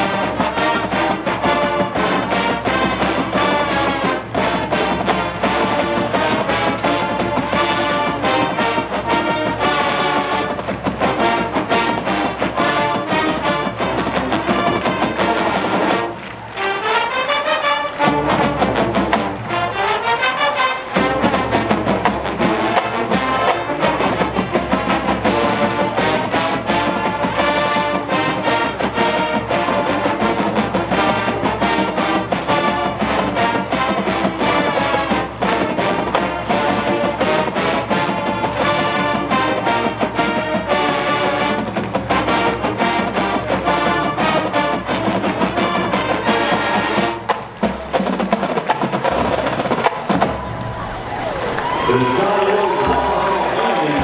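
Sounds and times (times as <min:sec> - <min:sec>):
marching band playing: 0:00.0 - 0:54.0.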